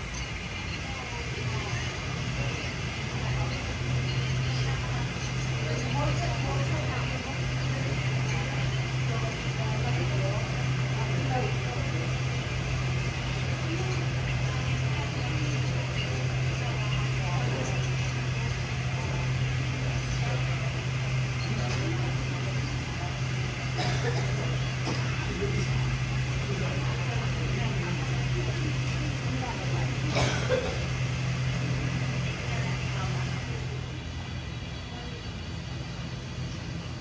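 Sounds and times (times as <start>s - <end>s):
people talking indistinctly: 0.0s - 37.0s
steady low hum: 0.0s - 37.0s.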